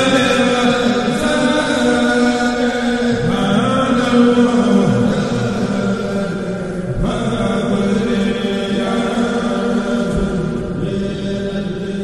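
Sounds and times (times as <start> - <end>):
voices chanting devotional poem: 0.0 - 12.0.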